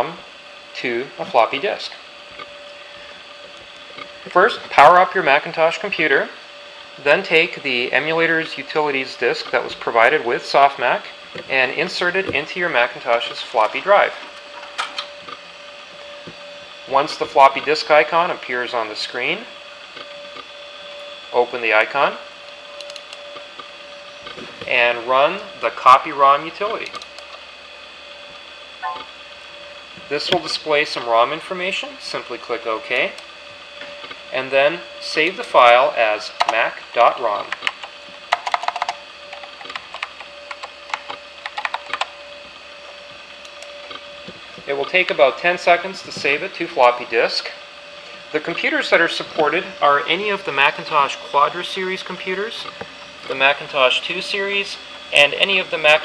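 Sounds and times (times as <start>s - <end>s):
floppy drive whine: 0.0s - 56.0s.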